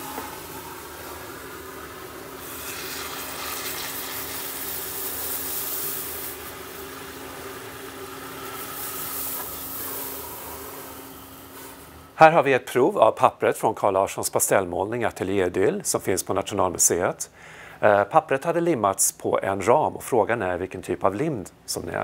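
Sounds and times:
liquid nitrogen hissing and boiling: 0.0s - 11.9s.

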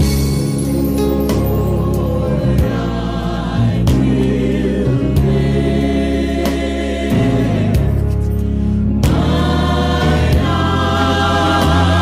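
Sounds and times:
sharp percussive hits: 0.0s - 2.1s
low bass line: 0.0s - 12.0s
choir singing a hymn: 0.8s - 8.3s, 9.0s - 12.0s.

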